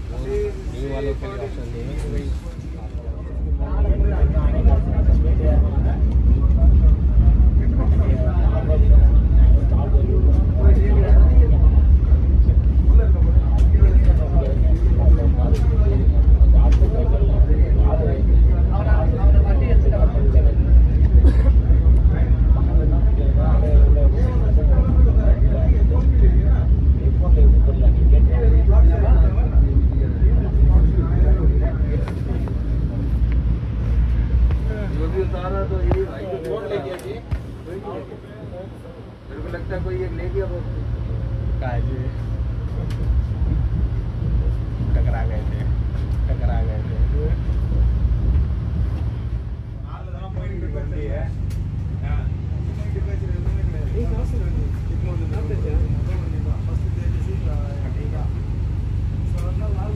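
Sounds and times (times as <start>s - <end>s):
train running rumble: 0.0s - 59.9s
voices talking: 0.0s - 59.9s.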